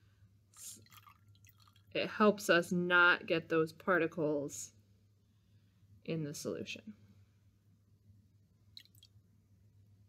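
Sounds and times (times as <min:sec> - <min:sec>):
liquid trickling into beaker: 0:00.8 - 0:02.0, 0:08.7 - 0:09.2.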